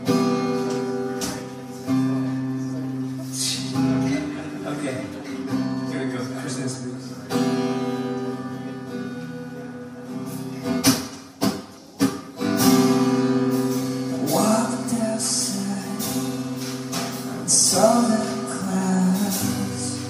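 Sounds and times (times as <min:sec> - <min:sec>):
acoustic guitar strumming chords: 0:00.0 - 0:20.0.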